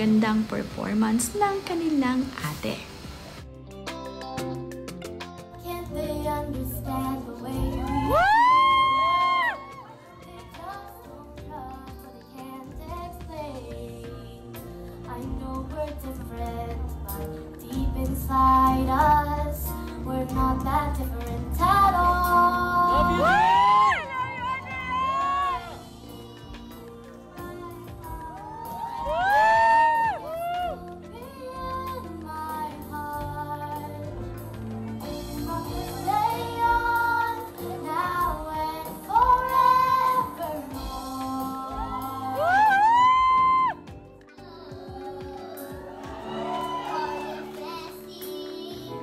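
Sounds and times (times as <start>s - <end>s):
backing music: 0.0s - 49.0s
girl singing: 5.6s - 34.4s, 35.4s - 49.0s.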